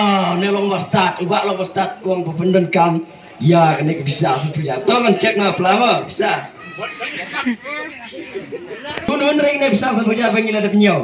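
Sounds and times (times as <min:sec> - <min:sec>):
man calling through a microphone: 0:00.0 - 0:11.0.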